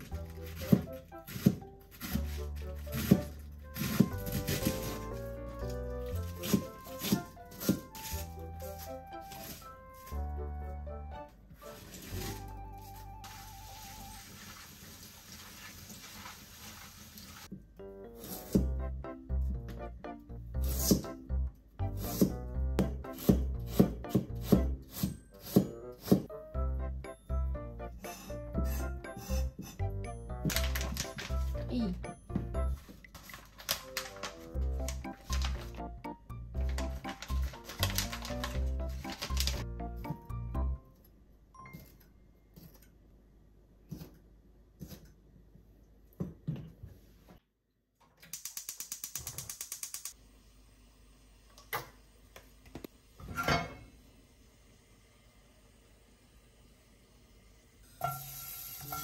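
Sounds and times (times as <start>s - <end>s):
knife slicing carrot on board: 0.0s - 5.2s, 6.2s - 9.6s, 20.6s - 21.2s, 21.9s - 26.3s, 43.9s - 45.2s
soft background music: 0.0s - 14.6s, 17.6s - 42.3s.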